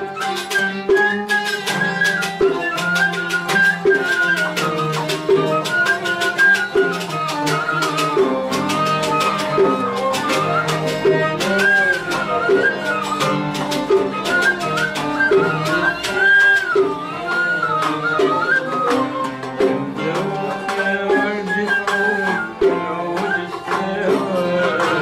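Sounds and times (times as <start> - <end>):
flute melody: 0.0 - 25.0
plucked oud notes: 0.0 - 25.0
violin melody: 0.0 - 25.0.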